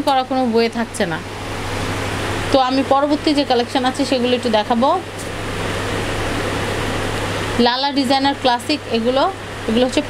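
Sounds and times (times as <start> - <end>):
fan hiss and hum: 0.0 - 10.0.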